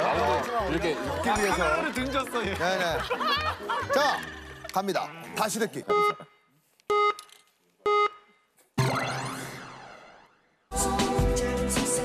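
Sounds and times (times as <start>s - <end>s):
electronic countdown beeps: 5.9s - 7.2s, 7.8s - 9.7s.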